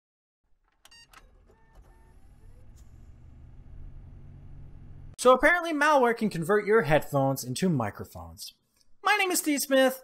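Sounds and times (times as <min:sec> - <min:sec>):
low rumble: 0:02.2 - 0:05.2.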